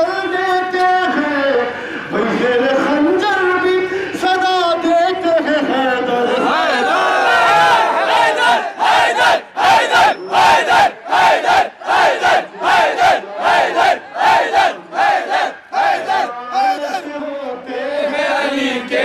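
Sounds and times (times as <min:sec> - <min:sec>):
man calling through a microphone: 0:00.0 - 0:06.9, 0:12.2 - 0:19.0
crowd of men chanting in unison: 0:06.3 - 0:17.1, 0:17.9 - 0:19.0.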